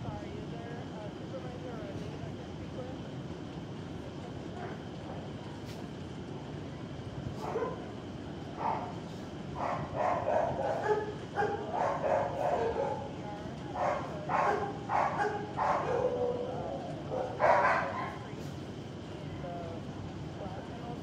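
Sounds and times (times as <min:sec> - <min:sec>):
dogs barking and yipping: 0:09.6 - 0:13.2, 0:13.8 - 0:18.3.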